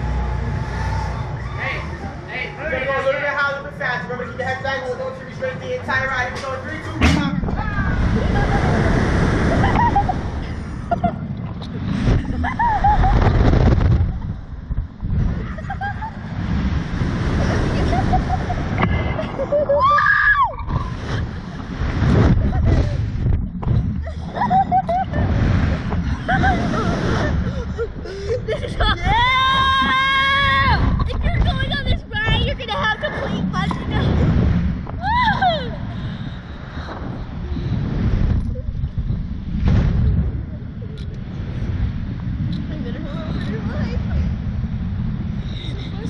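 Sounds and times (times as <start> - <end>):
wind buffeting microphone: 0.0 - 46.0
child screaming: 19.8 - 20.6, 29.0 - 30.9.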